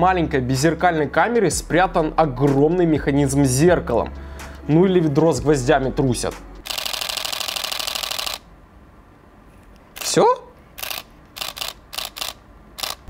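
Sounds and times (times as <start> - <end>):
camera shutter burst: 6.6 - 8.5, 10.8 - 13.0.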